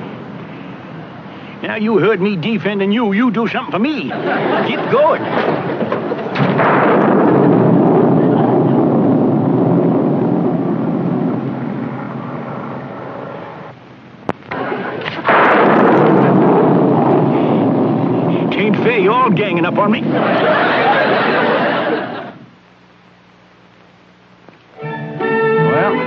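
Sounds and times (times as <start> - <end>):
thunder rumbling: 4.1 - 13.8, 14.5 - 22.4.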